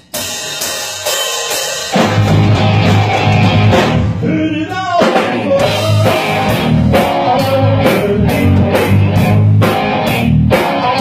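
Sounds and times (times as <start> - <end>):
drums and crash cymbals: 0.0 - 11.0
rock band playing: 0.0 - 11.0.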